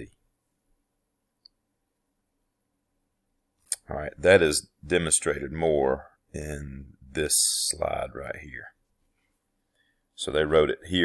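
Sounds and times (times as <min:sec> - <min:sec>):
faint steady hum: 0:00.0 - 0:11.0
person speaking: 0:03.6 - 0:08.8, 0:10.2 - 0:11.0.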